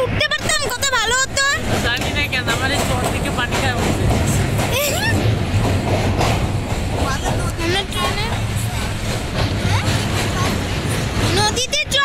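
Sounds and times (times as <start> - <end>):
people's voices: 0.0 - 12.0
train wheels rumbling on rails: 0.0 - 12.0.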